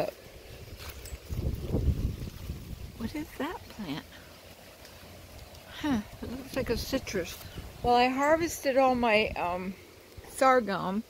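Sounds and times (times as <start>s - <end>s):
wind buffeting the microphone: 0.0s - 3.8s, 5.7s - 10.4s.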